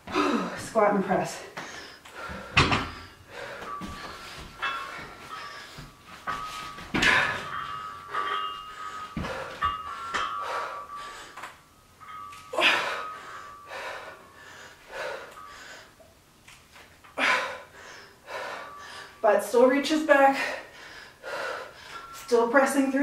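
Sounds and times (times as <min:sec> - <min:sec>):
woman breathing hard: 0:00.0 - 0:00.8, 0:01.4 - 0:16.2, 0:17.0 - 0:19.2, 0:20.2 - 0:22.3.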